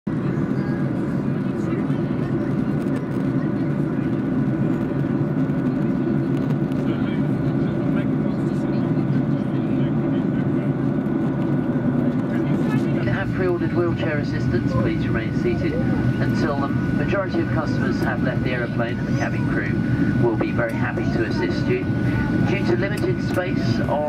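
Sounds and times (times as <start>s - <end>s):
jet engines roaring: 0.1s - 24.0s.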